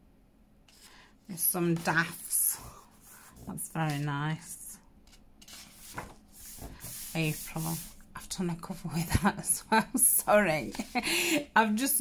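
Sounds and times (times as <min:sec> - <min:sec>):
paper page turning: 0:05.0 - 0:07.9.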